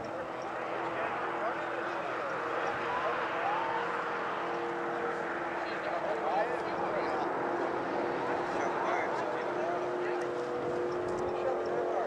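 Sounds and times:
distant racing boat engine: 0:00.0 - 0:12.0.

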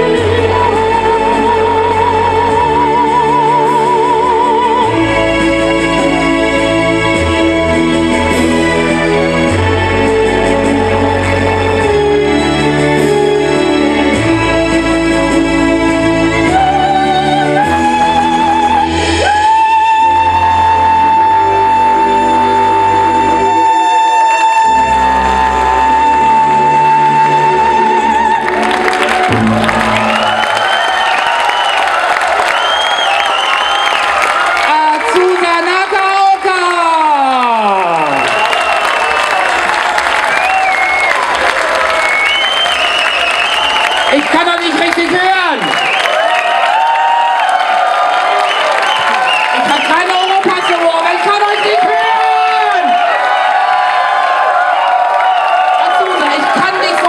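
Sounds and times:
soprano singing: 0:00.0 - 0:31.1
orchestral accompaniment: 0:00.0 - 0:31.2
crowd cheering: 0:23.3 - 0:57.0
people shouting and whooping: 0:28.5 - 0:34.8, 0:36.1 - 0:57.0.

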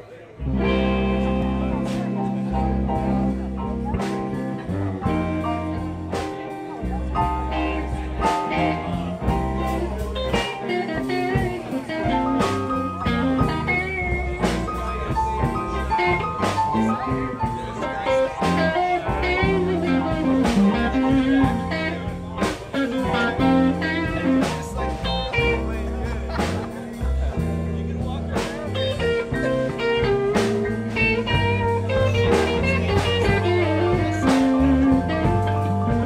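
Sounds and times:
bass guitar: 0:00.0 - 0:36.0
electric guitar with bent notes: 0:00.0 - 0:36.0
drum kit steady beat: 0:00.5 - 0:36.0.

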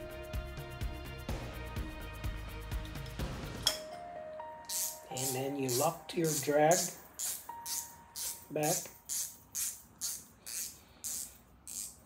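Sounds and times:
fishing reel drag clicking: 0:04.7 - 0:12.0.

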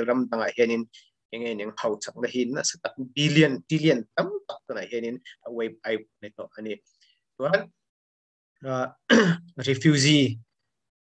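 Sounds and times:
man clearing his throat: 0:09.1 - 0:09.6.

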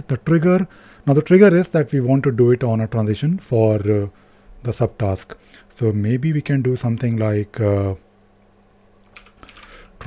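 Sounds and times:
keyboard typing: 0:09.1 - 0:09.9.

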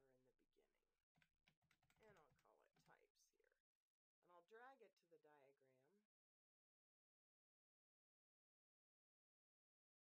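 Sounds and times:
faint keyboard typing: 0:01.2 - 0:03.1.

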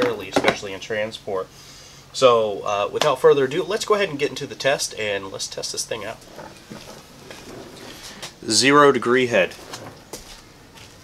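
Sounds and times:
man speaking: 0:02.2 - 0:06.2, 0:08.4 - 0:09.6.

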